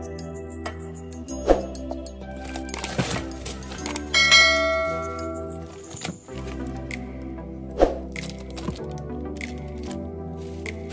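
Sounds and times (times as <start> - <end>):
background music: 0.0 - 10.9
bell-like ding: 4.1 - 5.7
short swish: 7.8 - 8.0.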